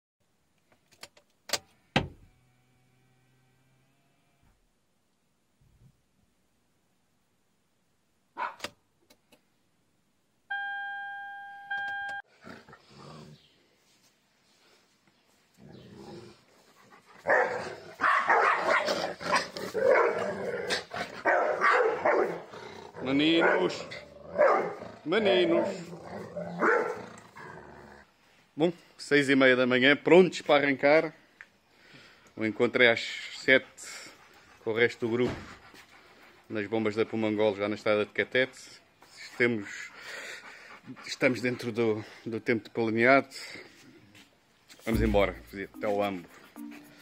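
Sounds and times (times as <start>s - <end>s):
dogs growling: 12.3s - 13.5s, 15.6s - 18.0s, 18.6s - 28.1s
dogs barking: 17.2s - 27.1s.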